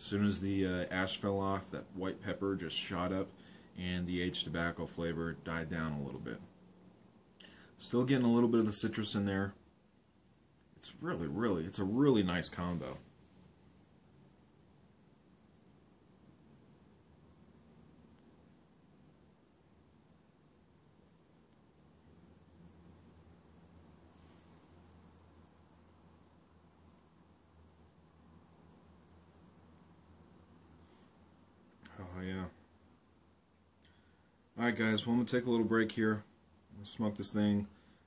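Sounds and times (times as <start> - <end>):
low hum: 0.0 - 38.0.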